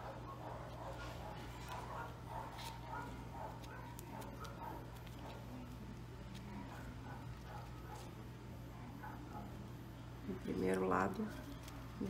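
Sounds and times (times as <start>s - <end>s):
steady low hum: 0.0s - 12.0s
ribbon and thread rustling: 0.6s - 8.2s, 10.4s - 12.0s.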